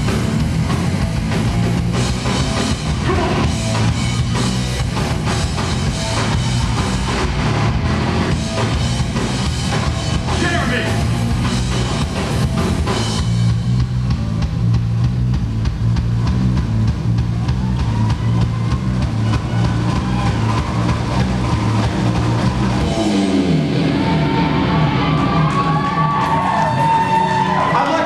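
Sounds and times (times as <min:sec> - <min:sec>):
live rock band playing: 0:00.0 - 0:28.0
crowd cheering: 0:01.4 - 0:13.2, 0:16.0 - 0:28.0.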